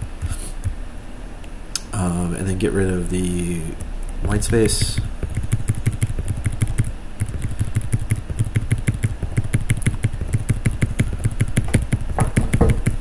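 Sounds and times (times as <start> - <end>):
keyboard keys tapping: 3.3 - 13.0.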